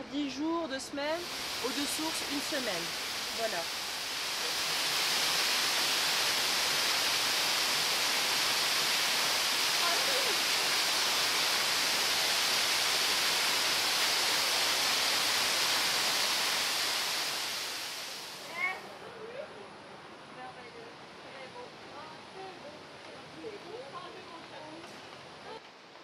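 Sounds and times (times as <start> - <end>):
waterfall rushing into pool: 1.2 - 18.8.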